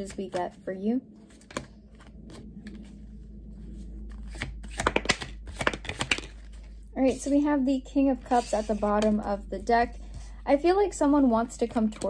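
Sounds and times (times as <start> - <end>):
cards being shuffled: 1.2 - 3.0, 3.8 - 7.2.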